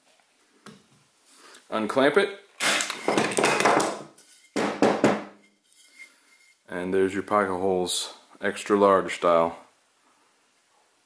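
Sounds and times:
faint metallic ring: 0:05.4 - 0:06.7.

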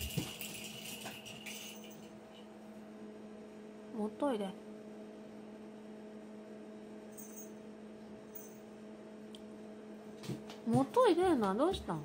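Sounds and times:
faint electrical hum: 0:00.0 - 0:12.0.

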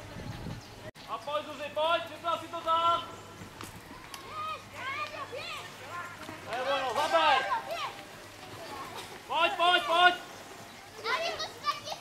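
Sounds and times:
spectators shouting high calls: 0:03.8 - 0:08.6, 0:09.2 - 0:12.0.

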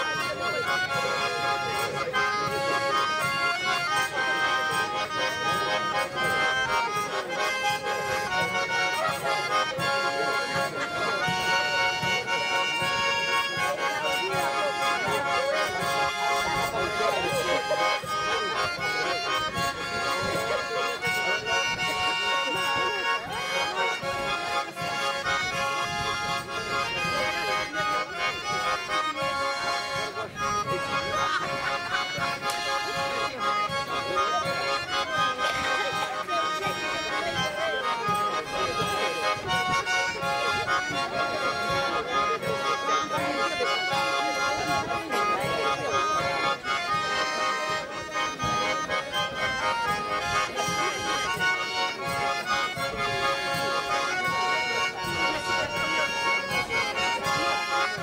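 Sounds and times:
button accordions playing folk tune: 0:00.0 - 0:58.0.

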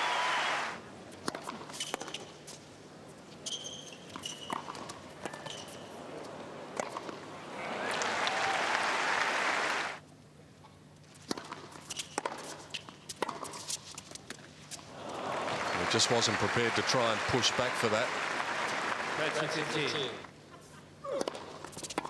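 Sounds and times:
crowd applause: 0:00.0 - 0:00.8, 0:07.4 - 0:10.0, 0:14.9 - 0:20.3
sneaker squeaks: 0:03.3 - 0:05.9.

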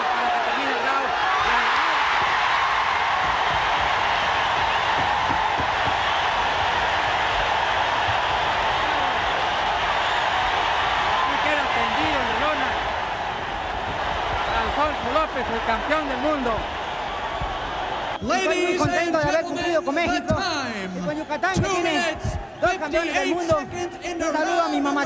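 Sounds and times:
crowd cheering and shouting: 0:00.0 - 0:25.0.

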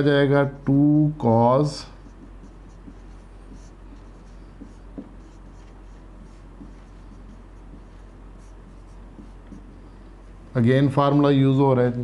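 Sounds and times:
marker scratching on whiteboard: 0:01.8 - 0:10.5
sharp marker tap: 0:02.0 - 0:09.8.

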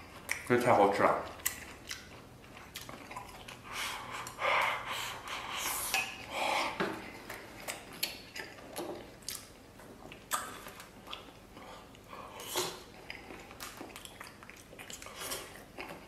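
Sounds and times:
wet chewing: 0:01.1 - 0:16.0.

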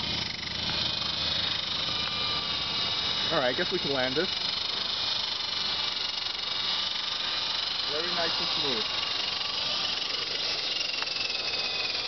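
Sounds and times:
rc helicopter motors whirring: 0:00.0 - 0:12.0.

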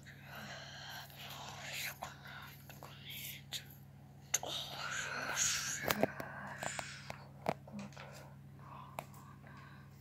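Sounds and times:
person whispering: 0:00.0 - 0:09.0
faint steady hum: 0:00.0 - 0:10.0.

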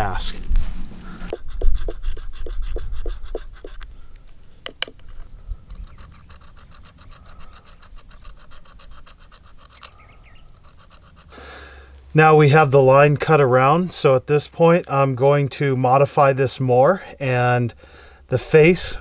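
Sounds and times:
stone scraping on stone: 0:01.3 - 0:03.8, 0:05.7 - 0:11.4.

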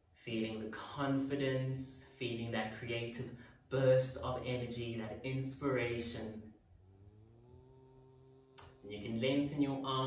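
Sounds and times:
faint low hum: 0:00.0 - 0:10.0
person speaking: 0:00.2 - 0:06.5, 0:08.6 - 0:10.0.

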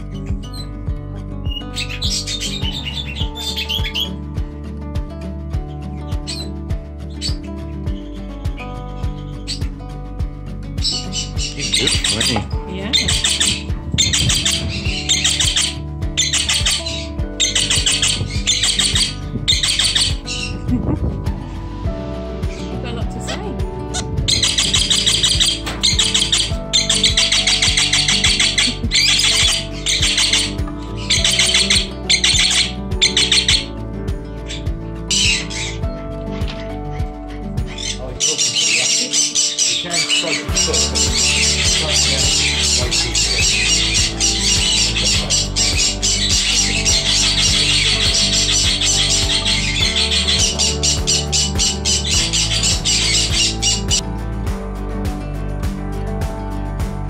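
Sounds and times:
background music with bass: 0:00.0 - 0:57.0
parrots squawking: 0:01.5 - 0:04.2, 0:06.2 - 0:06.5, 0:10.8 - 0:20.8, 0:22.5 - 0:33.7, 0:34.5 - 0:54.0.

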